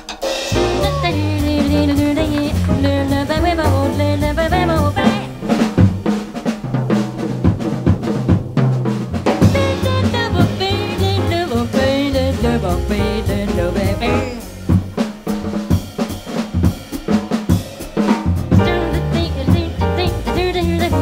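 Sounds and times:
drum kit: 0.0 - 21.0
saxophone: 0.5 - 5.5, 9.4 - 14.6
walking upright bass: 0.5 - 6.1, 9.4 - 15.0, 18.3 - 21.0.

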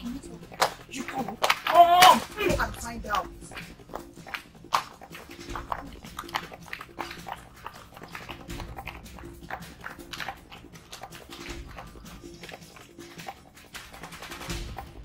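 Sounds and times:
background music with a beat: 0.0 - 15.0.

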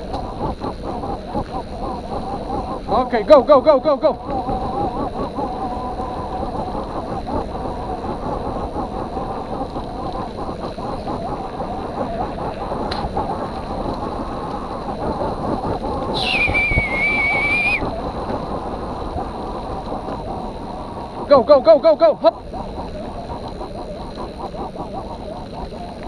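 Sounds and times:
bike tyres and frame rattling: 0.0 - 26.0
high steady squeal: 0.0 - 26.0
wind on camera: 0.0 - 26.0.

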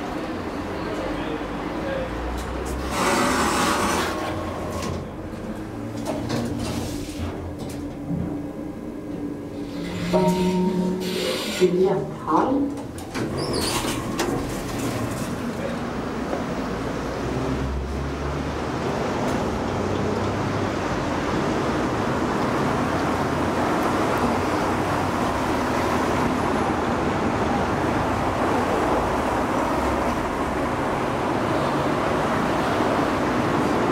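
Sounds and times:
road traffic passing: 0.0 - 33.9.

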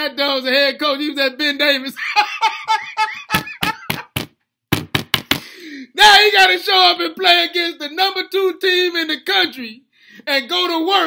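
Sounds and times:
man laughing: 1.9 - 4.3
sharp knocks or slaps: 3.3 - 5.5
breath: 5.3 - 6.0, 9.9 - 10.3.

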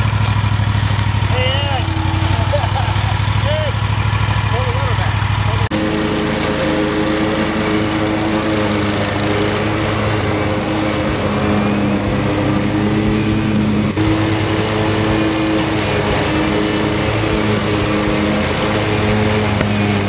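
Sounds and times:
lawn mower cutting grass: 0.0 - 20.0.

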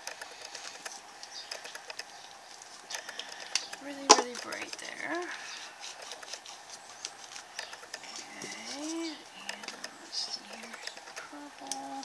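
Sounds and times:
hands rubbing paper: 0.0 - 12.0
person humming: 8.1 - 12.0.

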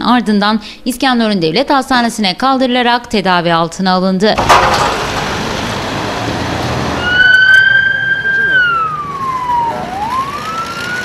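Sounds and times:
outdoor noise rush: 4.4 - 11.0
ambulance siren wailing: 6.6 - 11.0.

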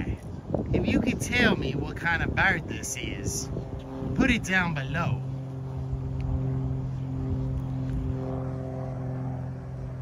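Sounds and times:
motor humming: 3.4 - 10.0.

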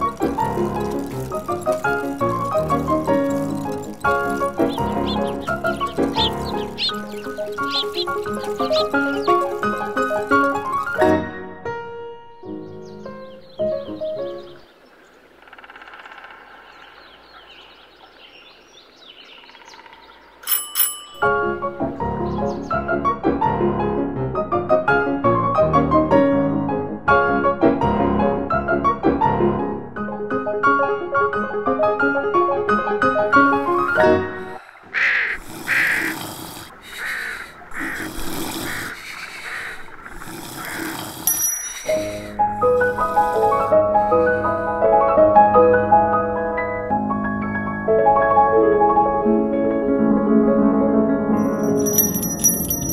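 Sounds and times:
birds chirping: 0.0 - 11.1, 12.5 - 21.2, 22.0 - 22.8, 33.5 - 43.8, 51.4 - 52.9
bicycle bell ringing: 20.4 - 21.6, 41.2 - 42.4, 51.4 - 52.9
short harsh animal calls: 34.9 - 36.2, 36.8 - 40.9.

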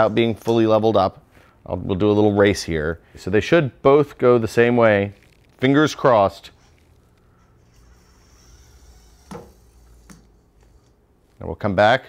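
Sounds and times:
thin high whine: 4.4 - 11.4
small electric motors whirring: 6.4 - 11.0.

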